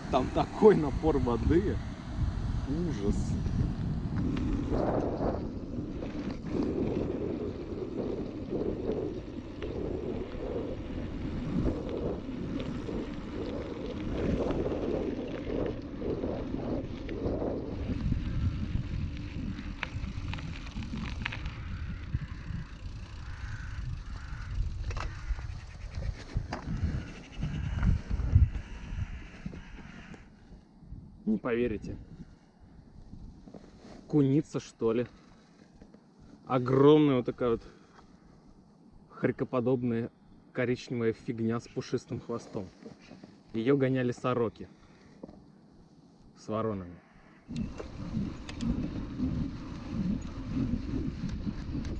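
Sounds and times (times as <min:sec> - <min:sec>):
wind buffeting microphone: 0:00.0 - 0:33.7, 0:47.4 - 0:51.9
bike tyres on dirt road: 0:00.0 - 0:51.9.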